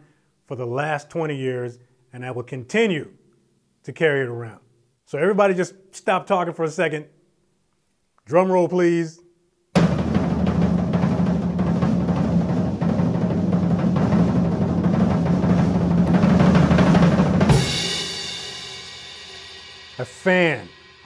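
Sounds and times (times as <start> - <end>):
cymbal crash ringing: 9.8 - 13.3, 16.0 - 21.0
drum roll: 9.8 - 21.0.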